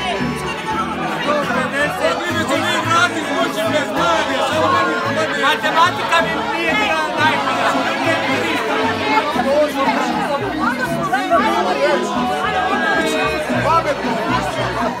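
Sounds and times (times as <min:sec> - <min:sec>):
crowd talking: 0:00.0 - 0:15.0.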